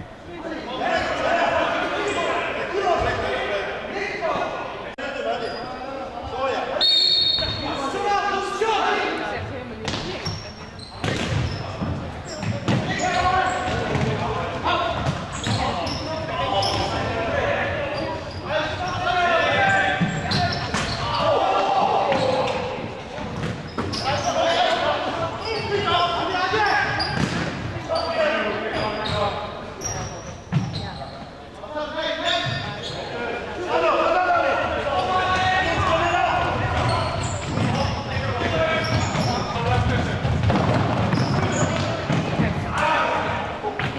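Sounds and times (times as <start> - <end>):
voices calling out: 0.0 - 43.9.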